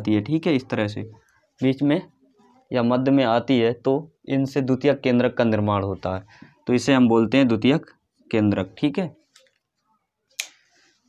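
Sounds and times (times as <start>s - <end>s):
man speaking: 0.0s - 9.4s.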